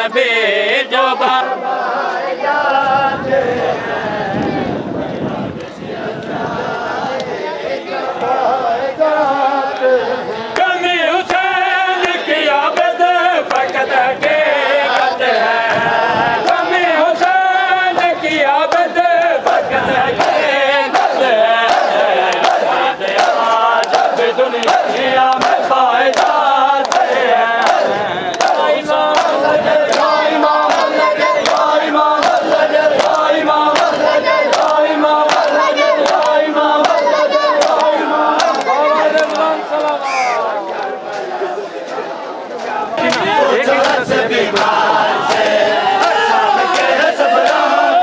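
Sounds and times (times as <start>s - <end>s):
men chanting together: 0.0s - 48.0s
hands slapping chests: 21.7s - 40.0s.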